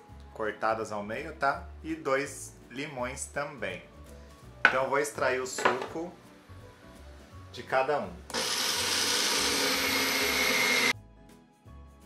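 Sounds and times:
food processor motor whine: 8.3s - 10.9s.

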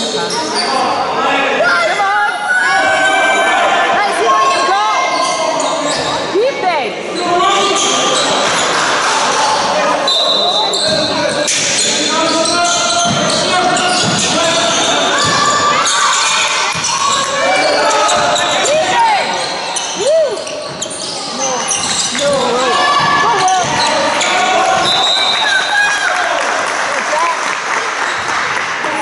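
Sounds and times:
shoes squeaking on floor: 0.0s - 0.9s, 4.4s - 6.4s, 7.2s - 25.8s
voices echoing in hall: 0.0s - 29.0s
basketball bouncing on wooden court: 10.8s - 11.2s, 12.4s - 15.6s, 21.8s - 25.0s.

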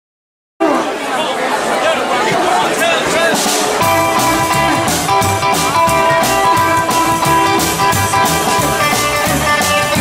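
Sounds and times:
crowd chattering: 0.6s - 10.0s.

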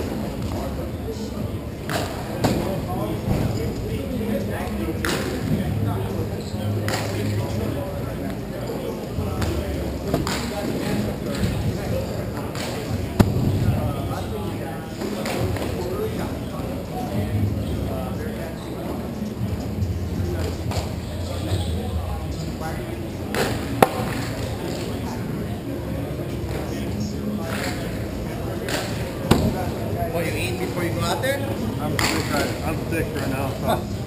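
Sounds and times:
players chatting: 0.0s - 34.0s
hockey play on indoor rink: 27.4s - 29.5s.

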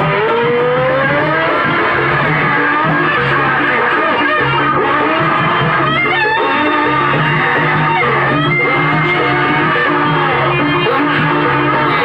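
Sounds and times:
low percussion pulse: 0.0s - 12.0s.

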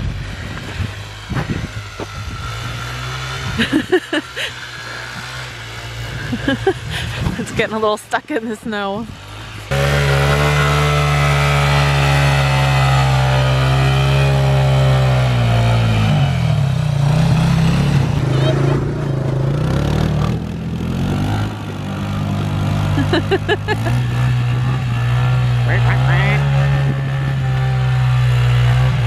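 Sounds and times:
motorcycle engine revving: 0.0s - 29.0s
person laughing: 3.5s - 5.0s, 6.0s - 7.5s, 22.8s - 24.2s.

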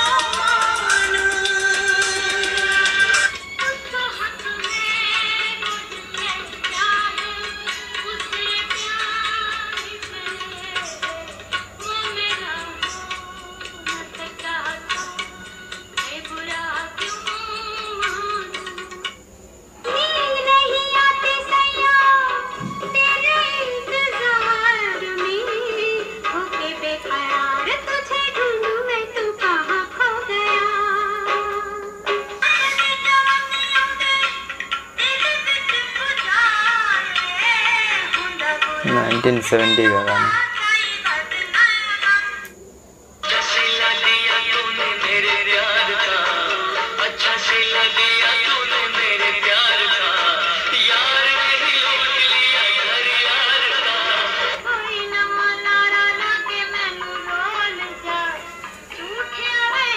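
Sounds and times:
instrumental accompaniment: 0.0s - 19.2s, 21.8s - 27.6s, 28.2s - 41.2s
film song with singing: 0.0s - 42.6s, 43.2s - 59.9s.

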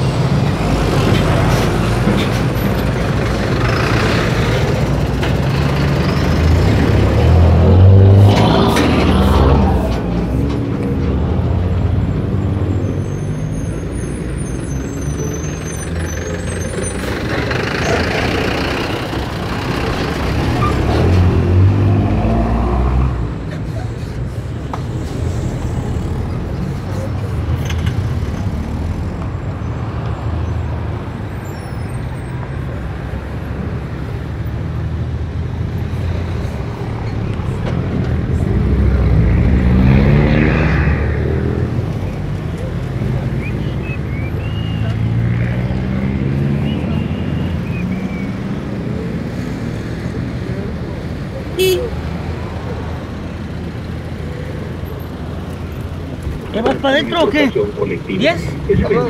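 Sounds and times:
road traffic: 0.0s - 59.0s.

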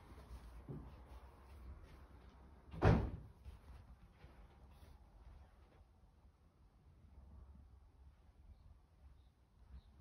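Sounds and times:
door thud: 2.7s - 3.3s.

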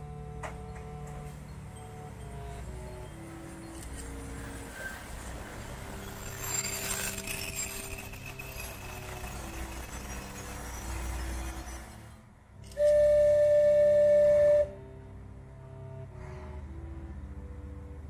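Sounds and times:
soft background music: 0.0s - 18.0s
locomotive whistle blast: 12.7s - 14.8s.

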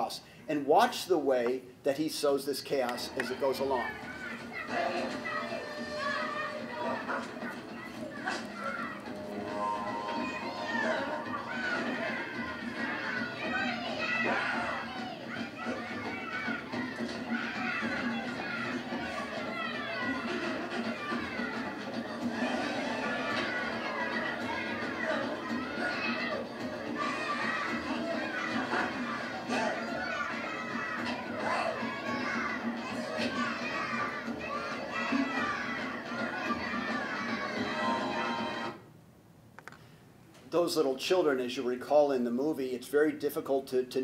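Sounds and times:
children laughing and jeering: 3.4s - 38.7s.

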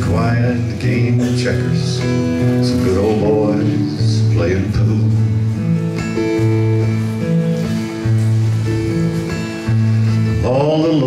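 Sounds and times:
acoustic guitar strumming: 0.0s - 11.0s
person singing folk song: 0.0s - 11.0s.

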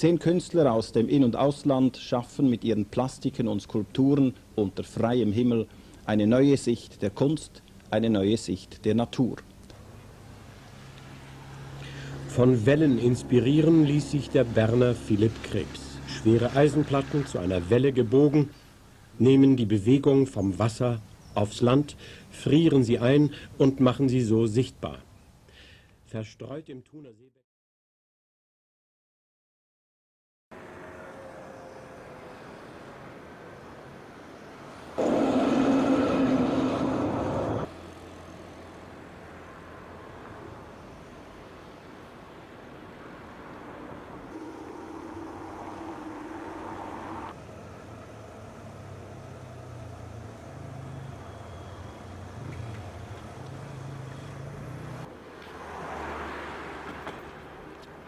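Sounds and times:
city street traffic: 9.3s - 24.2s, 30.5s - 58.0s
tram: 35.0s - 37.7s, 44.3s - 47.3s.

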